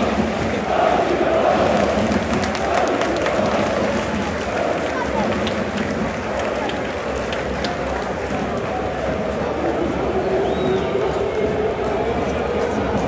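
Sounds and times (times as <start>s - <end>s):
people clapping: 0.0s - 13.0s
stadium crowd singing and cheering: 0.0s - 13.0s
nearby voices: 0.5s - 8.0s.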